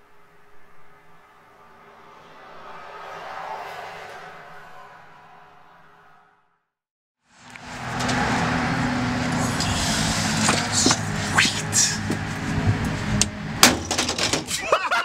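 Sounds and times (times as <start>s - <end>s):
engine running: 7.3s - 14.4s
people laughing: 14.5s - 15.0s.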